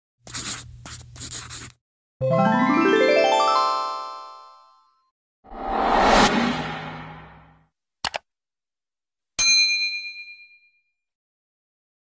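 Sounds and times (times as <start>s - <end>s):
double mouse click: 8.0s - 8.2s.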